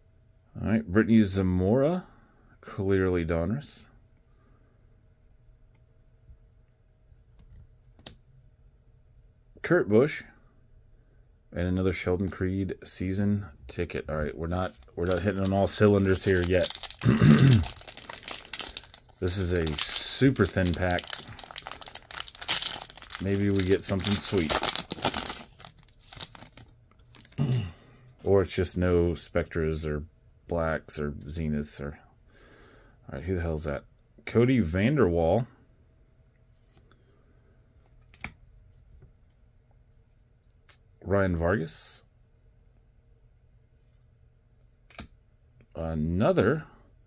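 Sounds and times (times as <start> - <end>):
trading cards shuffled: 14.4 - 27.5
foil wrapper crinkling and tearing: 14.5 - 27.7
person clearing throat: 17.0 - 17.8, 27.4 - 27.9.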